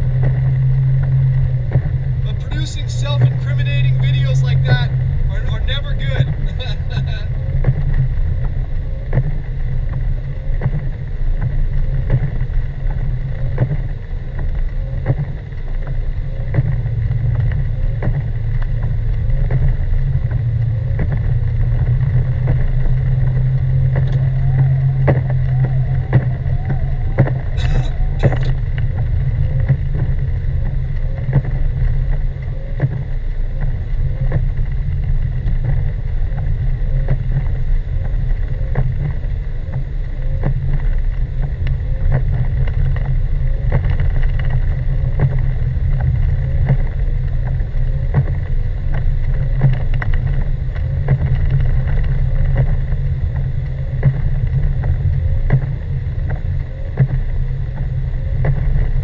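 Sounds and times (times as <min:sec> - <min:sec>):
car engine and tyres rumbling: 0:00.0 - 0:59.0.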